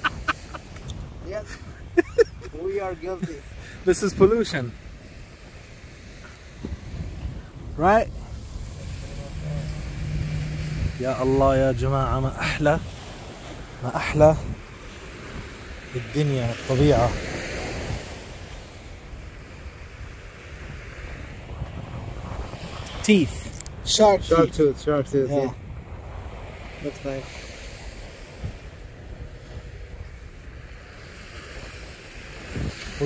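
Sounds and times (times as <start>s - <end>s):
ocean surf: 0.0s - 33.0s
wind buffeting microphone: 0.0s - 33.0s.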